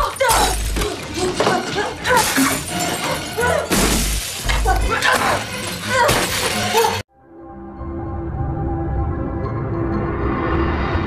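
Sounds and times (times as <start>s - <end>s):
crashing and shattering: 0.0s - 7.0s
film score: 0.0s - 11.0s
slow eerie music: 4.5s - 11.0s.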